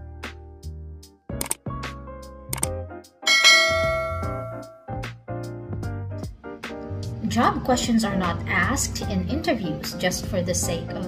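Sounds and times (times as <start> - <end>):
bright bell chime effect: 3.3 - 5.0
backing music: 3.3 - 7.2.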